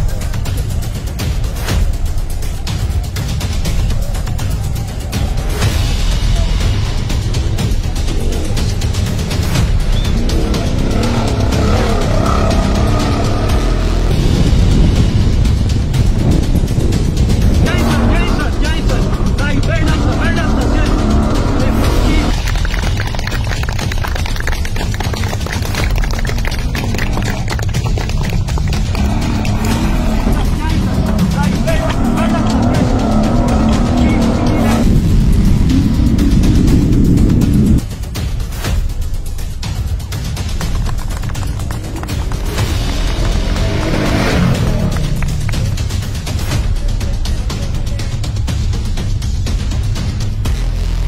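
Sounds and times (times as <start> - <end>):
music soundtrack: 0.0 - 51.0
rally car engines racing: 8.1 - 14.4, 17.2 - 22.9, 28.7 - 37.8, 42.3 - 45.9.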